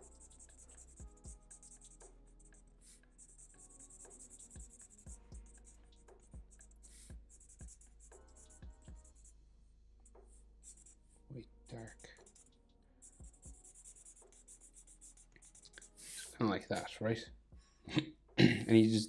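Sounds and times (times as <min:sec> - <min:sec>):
marker scratching on paper: 0:00.0 - 0:09.3, 0:10.0 - 0:11.2, 0:11.8 - 0:17.0.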